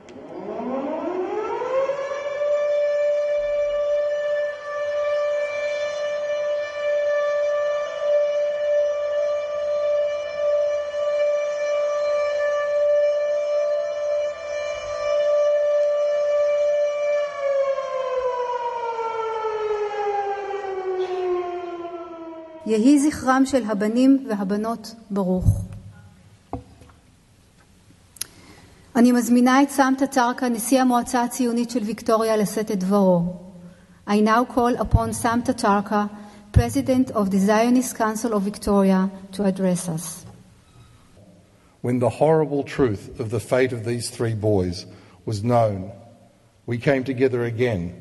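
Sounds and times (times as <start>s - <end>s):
civil defence siren: 0.0s - 24.2s, 31.5s - 41.8s.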